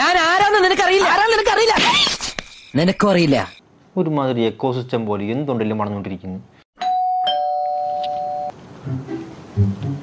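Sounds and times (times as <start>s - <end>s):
electronic two-tone doorbell chime: 6.8s - 8.5s.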